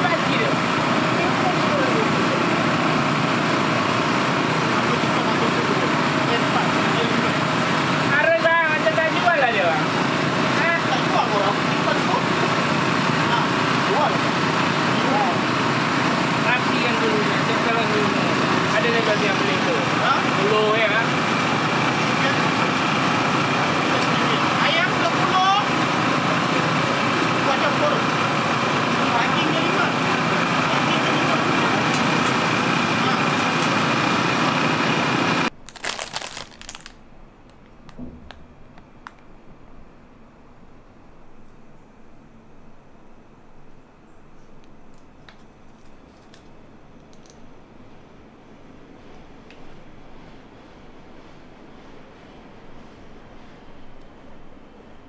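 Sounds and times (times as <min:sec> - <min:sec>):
street food stall din: 0:00.0 - 0:39.6.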